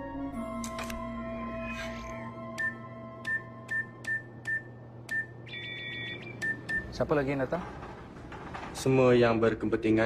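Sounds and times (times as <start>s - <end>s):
keypad click and beep: 2.6s - 6.9s.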